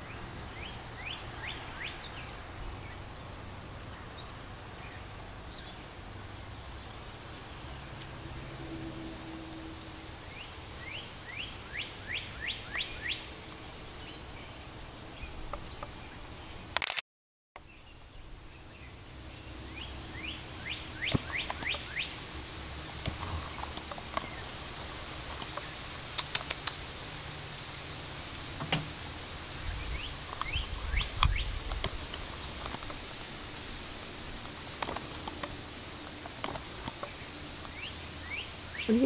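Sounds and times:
sharp clicks: 0:16.8 - 0:17.0, 0:25.3 - 0:26.8.

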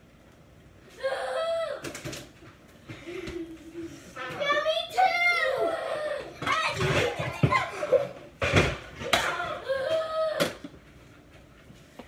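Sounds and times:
young children's voices: 0:03.4 - 0:08.2.

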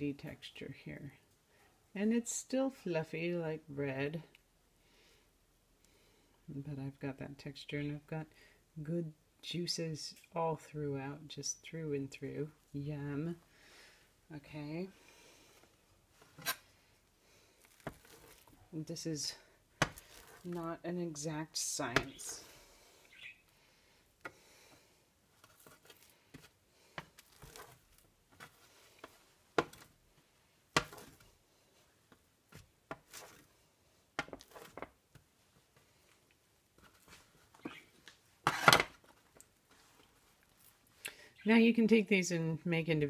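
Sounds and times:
hands handling food: 0:17.5 - 0:18.7, 0:19.8 - 0:20.6, 0:24.2 - 0:33.6.

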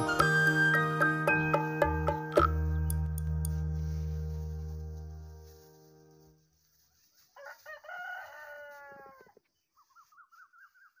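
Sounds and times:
rooster crowing: 0:07.3 - 0:09.4.

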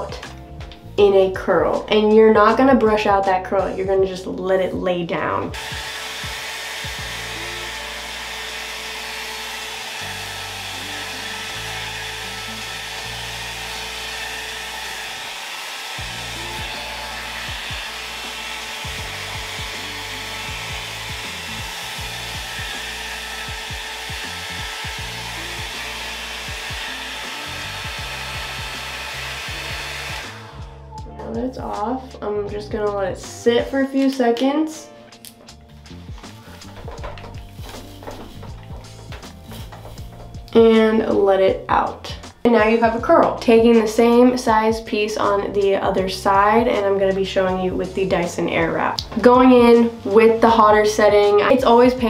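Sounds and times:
hot-air brush blowing: 0:05.6 - 0:31.0, 0:35.7 - 0:41.2, 0:46.3 - 0:52.0.

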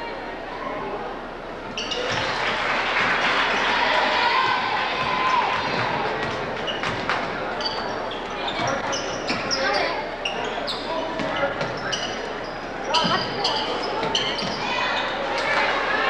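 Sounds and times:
sneakers squeaking: 0:01.7 - 0:02.4, 0:03.5 - 0:16.0
voices in background: 0:03.4 - 0:16.0.

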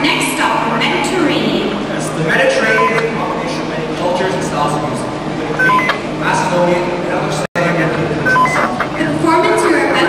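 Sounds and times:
voices: 0:00.0 - 0:10.0
short electronic beeps: 0:02.6 - 0:03.0, 0:05.6 - 0:06.0, 0:08.2 - 0:08.8.

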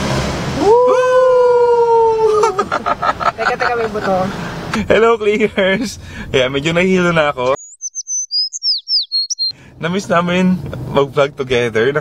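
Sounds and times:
cartoon birds tweeting: 0:07.5 - 0:09.5.

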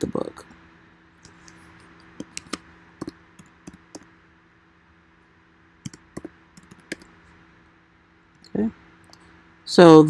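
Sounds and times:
faint steady hum: 0:00.0 - 0:10.0
keyboard typing clicks: 0:02.2 - 0:04.1, 0:05.8 - 0:07.1.

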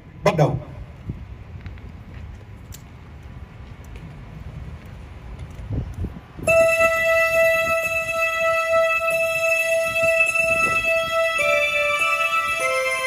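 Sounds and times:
wind on microphone: 0:00.8 - 0:12.7
organ-like keyboard note: 0:06.4 - 0:13.0.

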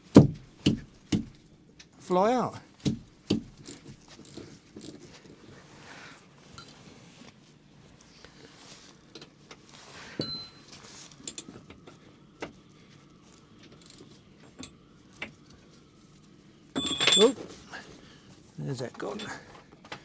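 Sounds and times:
socket ratchet and tools clinking: 0:16.8 - 0:17.4
metal clank: 0:16.8 - 0:17.5.

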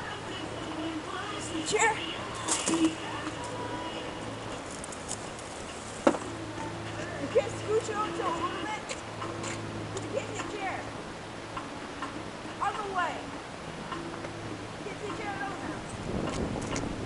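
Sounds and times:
steady low hum: 0:00.0 - 0:17.0.

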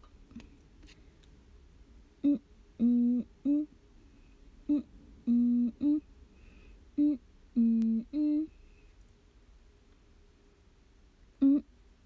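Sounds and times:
woman humming: 0:02.2 - 0:03.8, 0:04.6 - 0:06.1, 0:07.0 - 0:08.6, 0:11.4 - 0:11.8.

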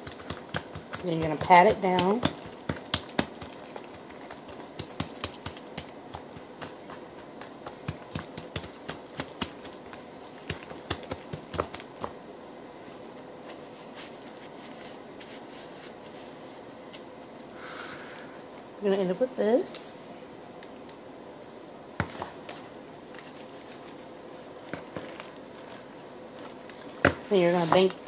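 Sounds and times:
hands patting wet dough: 0:00.0 - 0:12.2.

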